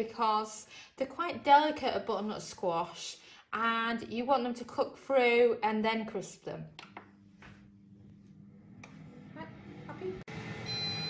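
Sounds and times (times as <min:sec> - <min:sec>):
air fryer fan humming: 0:07.1 - 0:11.0
high electronic beep: 0:10.6 - 0:11.0.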